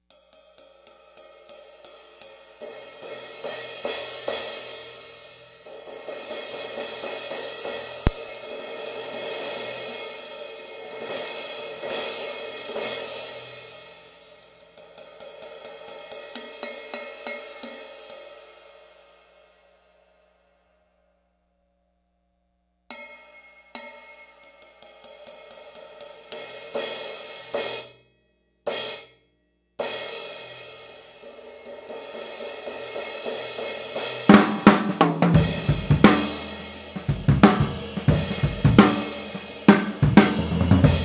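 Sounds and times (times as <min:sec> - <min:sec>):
crash cymbal struck with drumsticks: 0:06.3 - 0:10.2.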